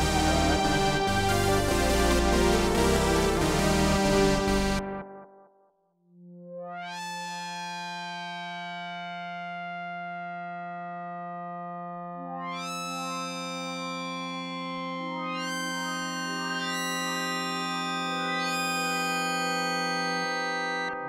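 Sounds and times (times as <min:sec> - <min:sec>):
synthesizer chord with filter sweep: 0:00.0 - 0:21.0.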